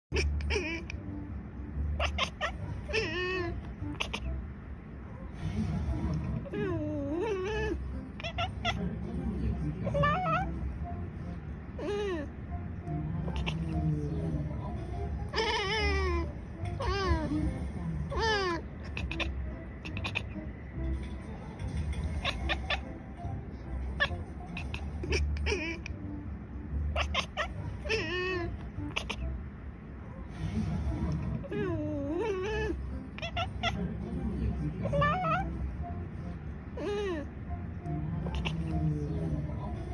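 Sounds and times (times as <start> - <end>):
cats meowing: 0.1 - 1.2, 1.8 - 4.4, 6.4 - 9.0, 9.8 - 10.8, 11.7 - 20.5, 21.7 - 29.4, 31.3 - 34.0, 34.7 - 36.0, 36.7 - 39.9.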